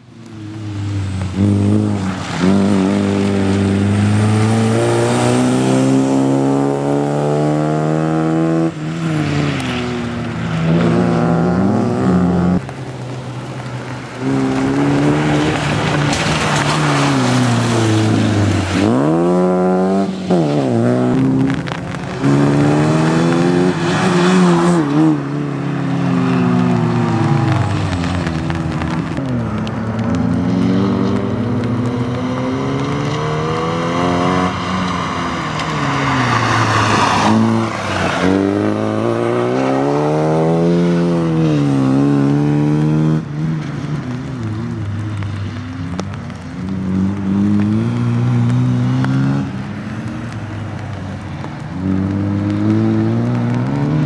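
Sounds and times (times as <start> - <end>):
car engine revving hard: 1.3 - 8.8, 22.2 - 25.2, 30.5 - 34.6.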